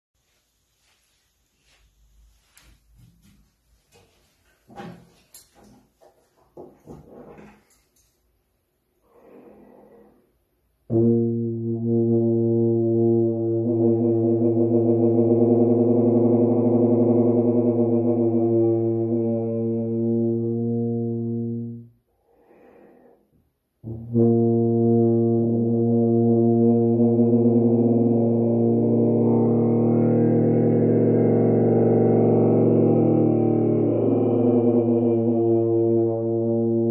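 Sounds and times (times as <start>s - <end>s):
tuba being handled: 0.2s - 8.5s
soft breath: 9.0s - 10.4s, 22.1s - 23.5s
tuba sustained note: 9.2s - 23.2s, 23.8s - 36.9s.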